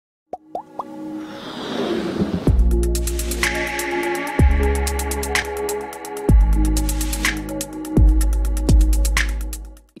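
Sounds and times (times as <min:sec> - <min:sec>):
electronic pops rising in pitch: 0:00.3 - 0:01.0
rising whoosh: 0:01.1 - 0:03.9.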